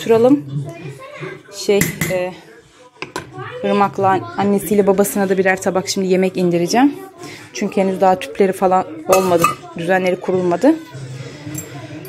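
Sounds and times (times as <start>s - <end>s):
woman speaking: 3.6s - 10.9s.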